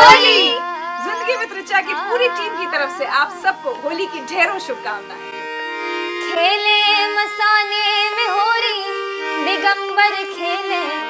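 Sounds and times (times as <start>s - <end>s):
harmonium drone: 0.0s - 11.0s
woman singing folk song: 0.4s - 5.2s, 6.2s - 11.0s.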